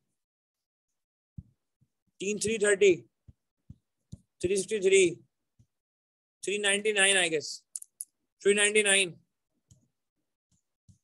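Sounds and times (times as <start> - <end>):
man speaking: 2.2 - 3.1, 4.4 - 5.3, 8.4 - 9.2.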